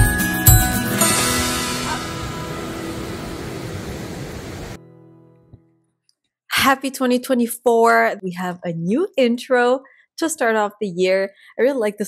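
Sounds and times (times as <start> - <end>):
ringing chord: 0.0 - 4.1
intro music: 0.0 - 4.8
steady hiss: 1.4 - 4.8.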